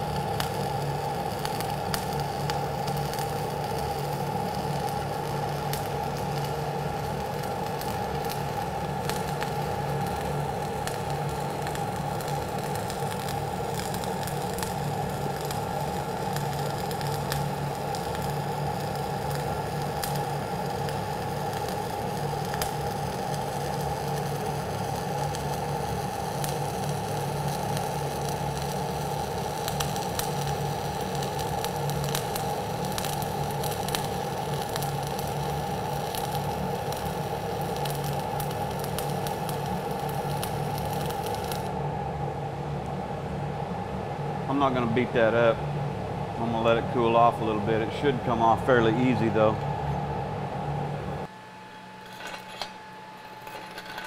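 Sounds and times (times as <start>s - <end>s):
welding arc crackling and popping: 0.0s - 41.8s.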